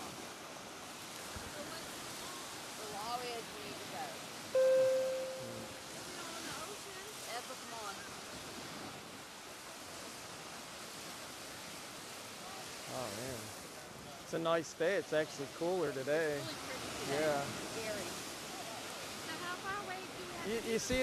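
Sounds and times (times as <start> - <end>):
surf washing on beach: 0.0 - 21.0
loud steady tone: 4.6 - 5.8.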